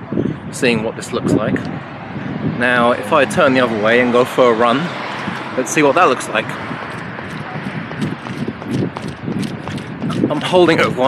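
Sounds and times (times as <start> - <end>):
footsteps running on pavement: 5.2 - 5.6, 6.4 - 11.0
handheld camera rustle: 6.9 - 10.6.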